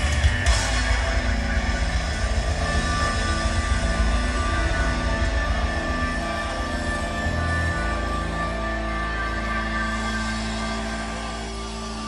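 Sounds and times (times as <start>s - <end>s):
low bass line: 0.0s - 12.0s
rock band playing held chords: 0.0s - 12.0s.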